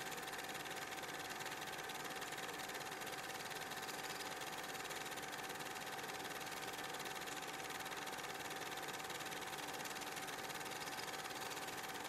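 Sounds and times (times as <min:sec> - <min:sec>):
film projector whirring: 0:00.0 - 0:12.0
fine rapid clatter: 0:00.0 - 0:12.0.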